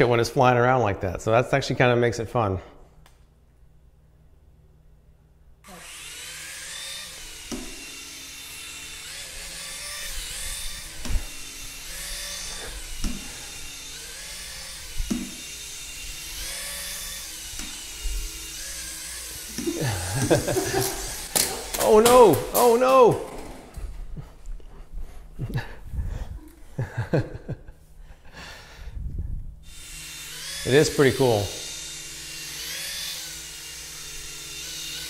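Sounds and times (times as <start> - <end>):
small electric motor whirring: 5.6 - 23.1, 29.6 - 35.0.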